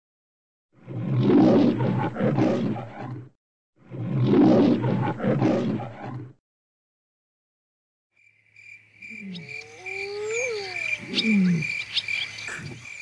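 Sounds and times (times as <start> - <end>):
lion roaring: 0.8 - 6.4, 9.2 - 11.7.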